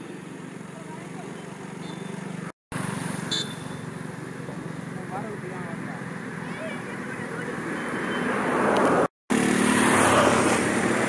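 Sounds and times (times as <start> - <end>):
vehicle engine idling: 0.0 - 7.8.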